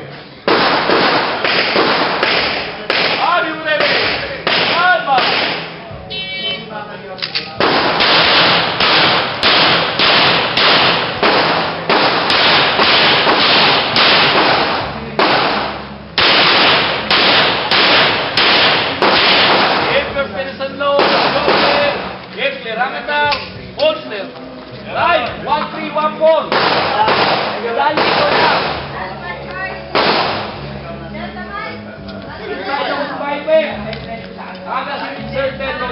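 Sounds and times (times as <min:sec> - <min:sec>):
rapid pistol shots: 0:00.5 - 0:05.8, 0:07.6 - 0:20.2, 0:21.0 - 0:22.2, 0:26.5 - 0:29.0, 0:30.0 - 0:30.6.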